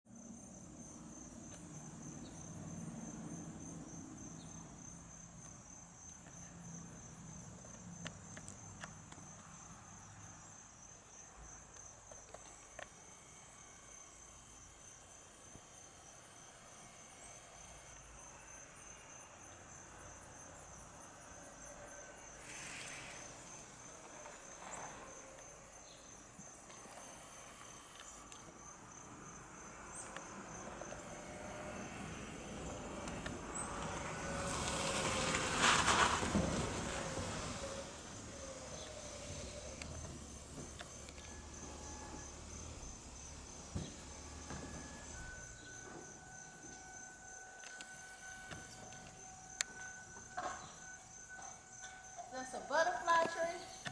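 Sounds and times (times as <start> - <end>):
insect chirring trill: 0.1 - 36.2, 37.0 - 53.9.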